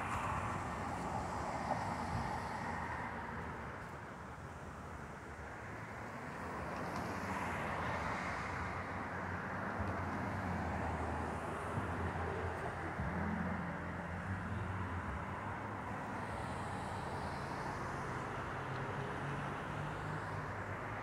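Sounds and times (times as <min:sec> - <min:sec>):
road traffic rushing: 0:00.0 - 0:21.0.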